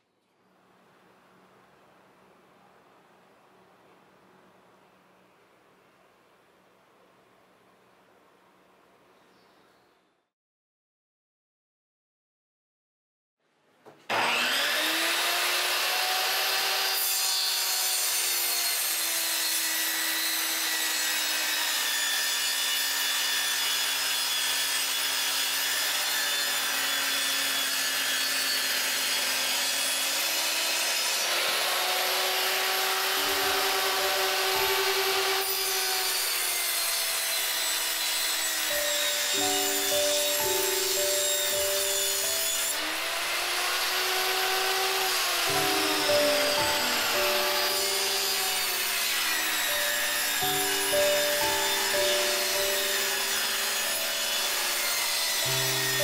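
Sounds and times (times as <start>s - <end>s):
table saw cutting plywood: 14.1s - 56.0s.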